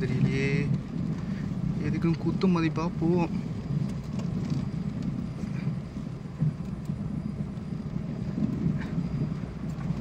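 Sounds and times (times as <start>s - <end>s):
car engine and tyres rumbling: 0.0s - 10.0s
rain: 0.0s - 10.0s.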